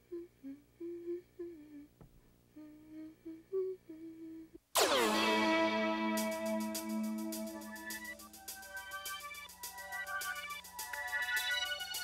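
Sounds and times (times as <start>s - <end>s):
girl humming softly: 0.0s - 4.6s.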